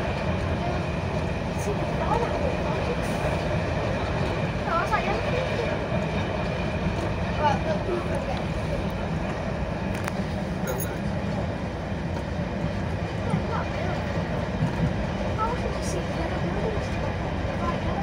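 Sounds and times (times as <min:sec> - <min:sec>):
train engine rumbling: 0:00.0 - 0:18.0.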